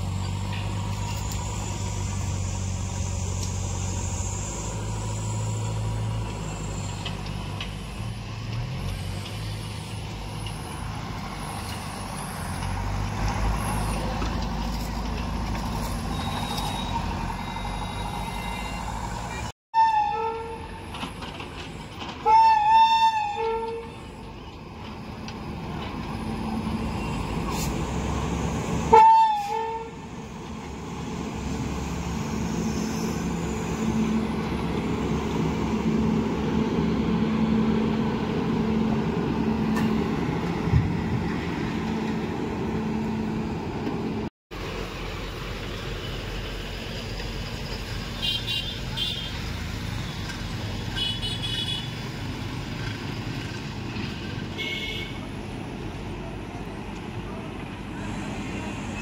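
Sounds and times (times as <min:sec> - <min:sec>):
train rumble: 0:00.0 - 0:59.0
train horn blasts: 0:19.8 - 0:20.8, 0:22.2 - 0:24.0, 0:28.9 - 0:30.0.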